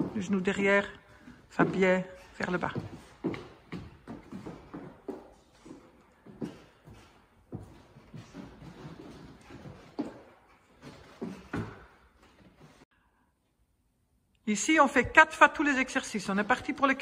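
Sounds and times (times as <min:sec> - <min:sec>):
feet thudding on wooden floor: 0:01.1 - 0:12.1.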